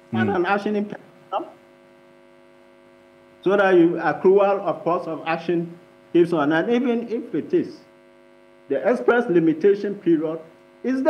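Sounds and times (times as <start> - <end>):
steady electrical hum: 0.0 - 11.0.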